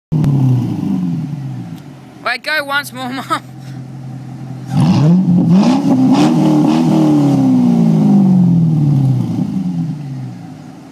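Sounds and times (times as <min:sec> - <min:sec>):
car exhaust revving: 0:00.1 - 0:02.2, 0:03.5 - 0:10.9.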